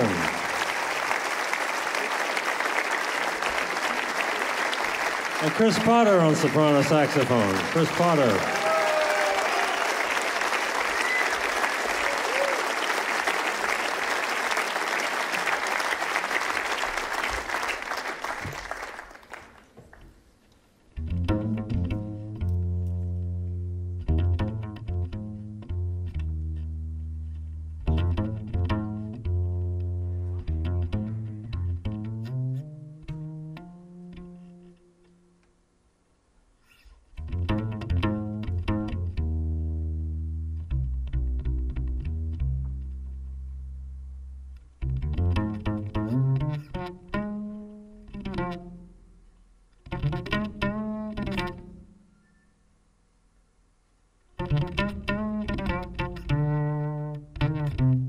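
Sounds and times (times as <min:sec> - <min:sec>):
pizzicato double bass: 0:21.0 - 0:34.8, 0:37.1 - 0:48.9, 0:49.8 - 0:51.8, 0:54.4 - 0:58.0.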